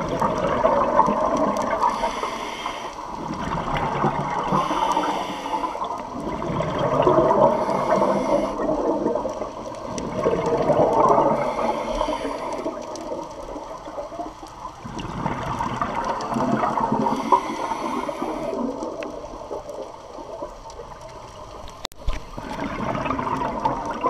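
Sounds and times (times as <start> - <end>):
bubbles gurgling underwater: 0.0 - 24.0.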